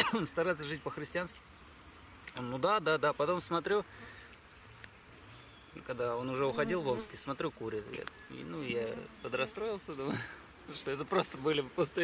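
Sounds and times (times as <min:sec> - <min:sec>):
flying insects buzzing: 0:00.0 - 0:12.0.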